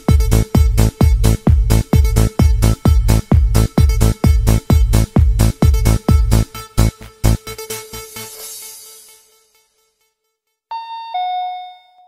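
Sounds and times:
two-note descending chime: 10.7 - 12.0.

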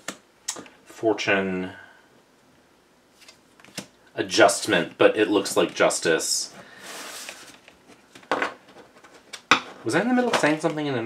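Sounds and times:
cards brushing on wood: 6.6 - 8.0.

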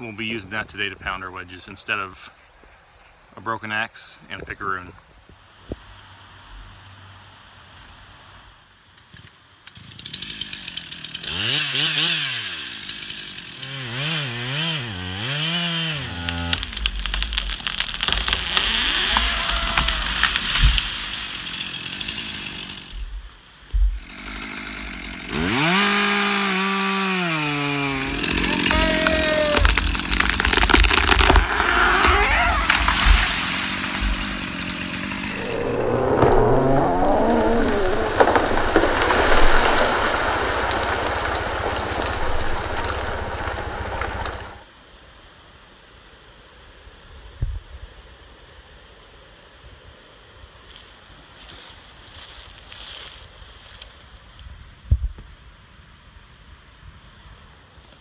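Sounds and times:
chainsaw revving and cutting: 9.7 - 23.2, 23.8 - 37.9
bark and debris rustling down: 16.1 - 21.8, 27.6 - 36.4.

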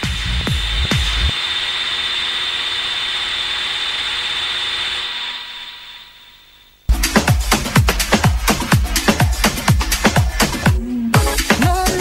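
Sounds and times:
kick drum: 0.0 - 1.3, 6.9 - 12.0.

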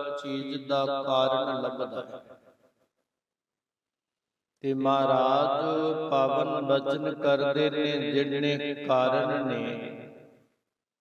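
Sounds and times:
man chanting melodically: 0.0 - 2.2, 4.6 - 10.2.

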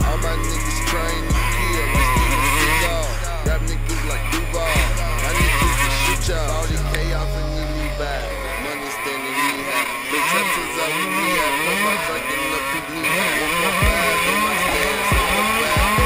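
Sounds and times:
low thumps: 0.0 - 8.6
dirt bike engine revving: 0.0 - 16.0.

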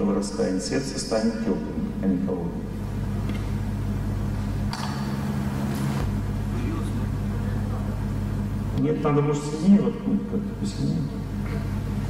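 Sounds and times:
electrical mains hum: 0.0 - 12.0
lecture speech: 8.8 - 11.2.

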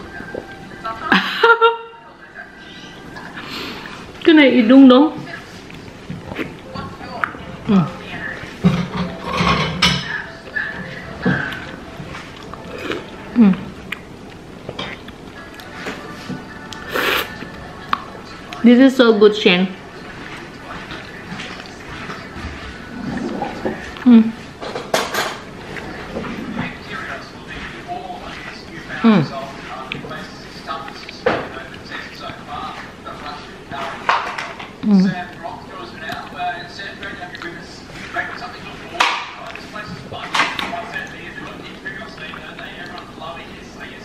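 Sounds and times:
person humming: 13.3 - 13.7, 16.7 - 17.5, 24.0 - 24.4
wet smacking and sucking: 16.7 - 18.0.

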